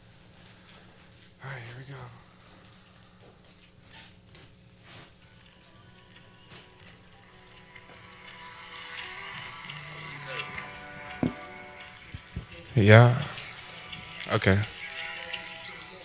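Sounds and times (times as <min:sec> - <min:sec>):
song playing from phone: 0:05.4 - 0:16.0.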